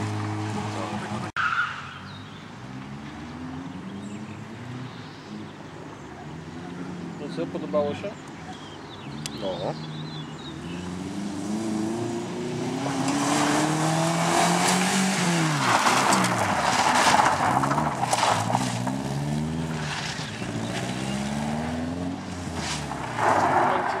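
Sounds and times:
rally car engine revving: 0.0 - 1.4, 9.0 - 24.0
gravel spraying from tyres: 13.0 - 21.7, 22.3 - 24.0.

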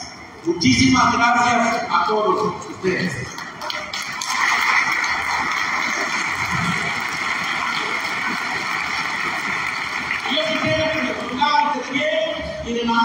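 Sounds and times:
audience applauding: 3.3 - 12.0.

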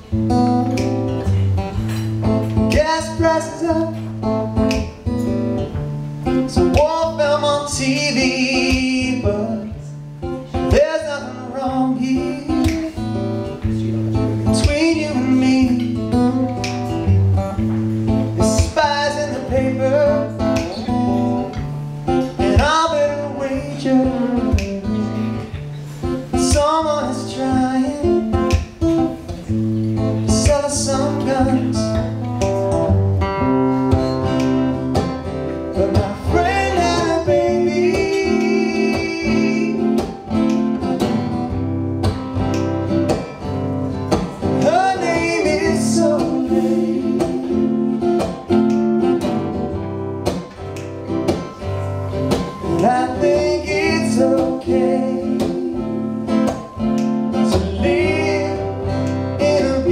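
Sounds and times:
acoustic guitar strummed: 0.0 - 59.9
man singing: 2.4 - 4.2, 6.5 - 17.1, 18.2 - 25.6, 26.2 - 28.5, 30.0 - 32.3, 35.7 - 40.5, 44.6 - 48.5, 52.4 - 59.9.

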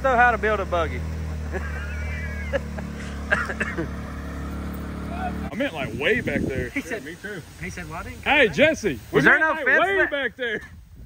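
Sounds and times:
utility vehicle engine droning: 0.0 - 7.0.

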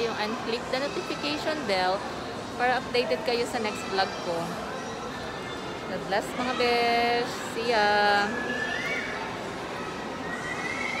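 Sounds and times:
busy shopping mall background: 0.0 - 11.0.

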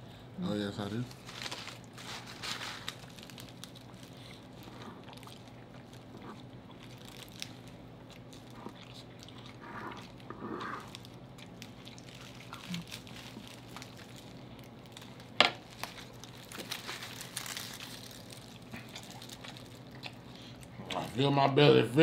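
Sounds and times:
people chewing corn: 1.7 - 21.1.

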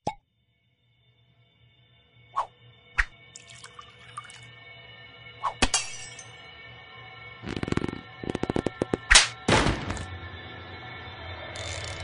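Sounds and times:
quiet music: 3.2 - 12.0.

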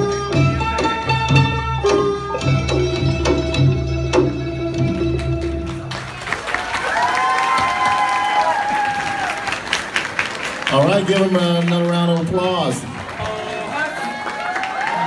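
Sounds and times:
folk dance music with bass beat: 0.0 - 6.0
audience applause: 5.6 - 15.0
audience cheering: 5.9 - 15.0.

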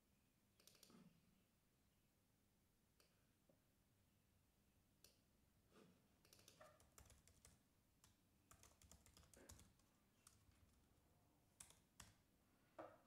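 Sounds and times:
typing on computer keyboard: 6.3 - 10.9, 11.6 - 12.2.

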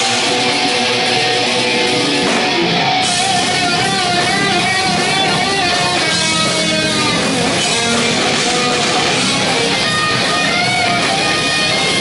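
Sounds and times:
electric guitars: 0.0 - 12.0
live rock band playing: 0.0 - 12.0.

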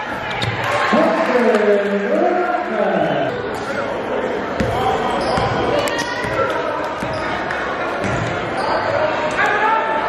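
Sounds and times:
voices of players and spectators: 0.0 - 10.0
basketball bouncing on hardwood floor: 8.0 - 8.3.

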